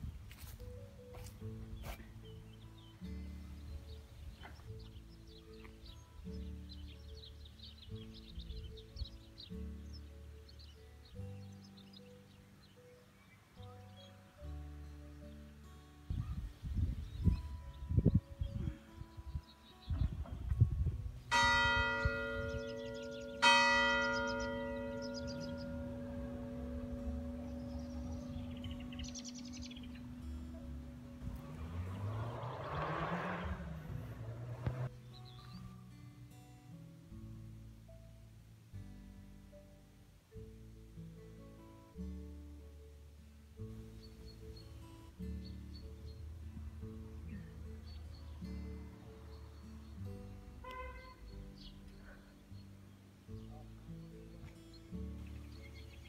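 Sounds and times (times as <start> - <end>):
church bell striking: 21.3 - 30.6
low rumbling bumps: 25.3 - 34.9.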